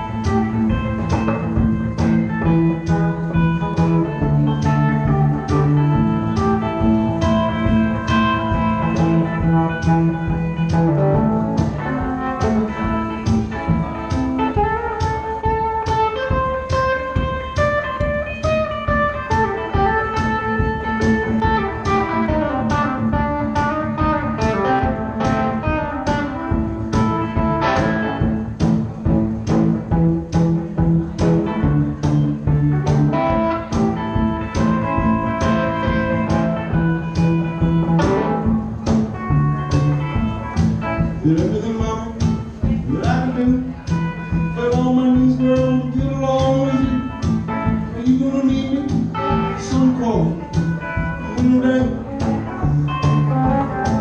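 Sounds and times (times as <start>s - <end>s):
electric guitar melody: 0.0s - 54.0s
steady drum beat: 0.0s - 54.0s.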